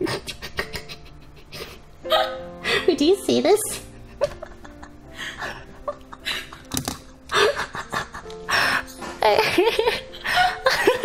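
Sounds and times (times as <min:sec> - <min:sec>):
woman laughing: 0:00.0 - 0:02.4, 0:04.2 - 0:08.5, 0:09.2 - 0:11.0
soft background music: 0:00.0 - 0:11.0.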